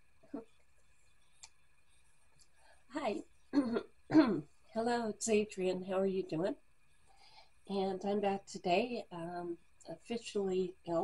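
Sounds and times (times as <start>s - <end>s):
woman speaking: 2.9s - 3.2s, 4.1s - 6.6s, 7.7s - 11.0s.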